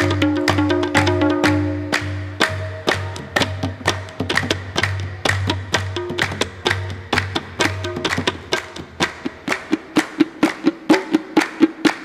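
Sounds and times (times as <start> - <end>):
hand clapping in time: 0.0 - 12.0
hand drum fast rhythm: 0.0 - 12.0.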